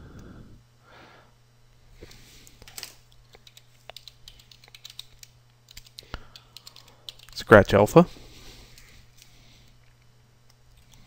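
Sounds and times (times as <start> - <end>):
keyboard typing: 2.8 - 7.4.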